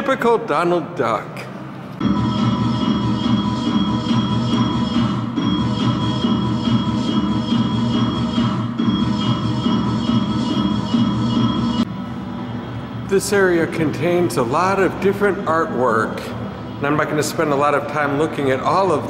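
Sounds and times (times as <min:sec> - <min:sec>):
held steady tones: 0:02.0 - 0:13.7.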